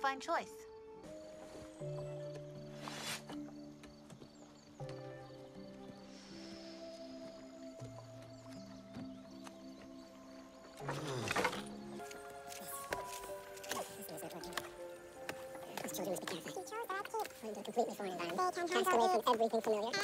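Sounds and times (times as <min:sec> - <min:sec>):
slow held-note score music: 0:00.6 - 0:20.0.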